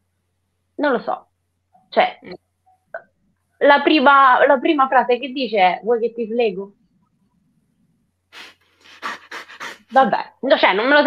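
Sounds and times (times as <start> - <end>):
stifled breathy laughter: 8.9 - 9.9.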